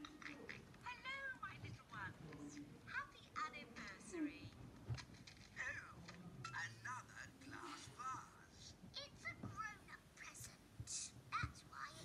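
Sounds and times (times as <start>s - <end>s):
high-pitched cartoon voices speaking: 5.6s - 12.0s.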